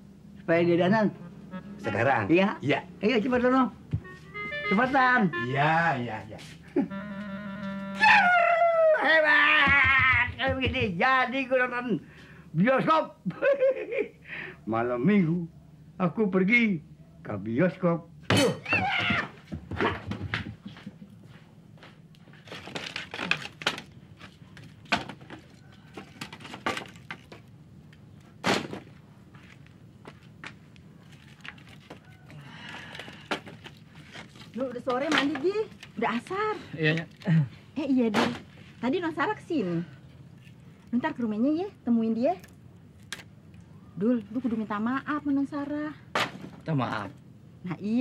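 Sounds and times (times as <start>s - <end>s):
footsteps on dirt: 28.8s - 32.0s.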